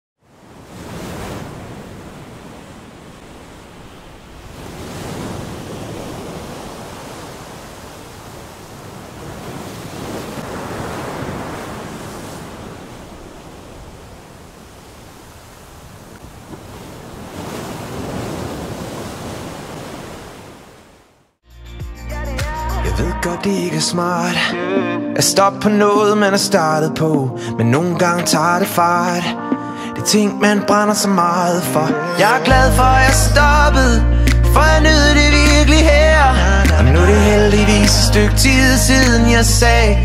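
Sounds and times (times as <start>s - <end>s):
sea surf: 0.2s - 21.3s
wind: 0.2s - 21.4s.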